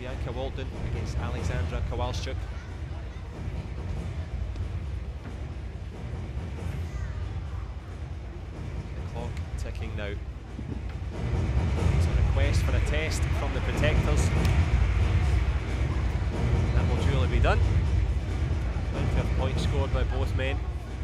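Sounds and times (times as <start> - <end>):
low arena rumble: 0.0 - 21.0.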